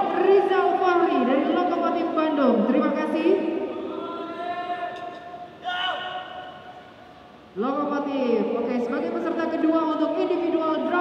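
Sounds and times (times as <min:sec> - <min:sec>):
long call over public address: 0:00.0 - 0:11.0.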